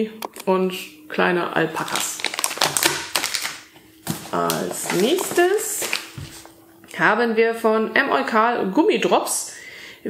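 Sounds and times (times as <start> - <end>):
plastic bag crinkling: 1.7 - 6.6.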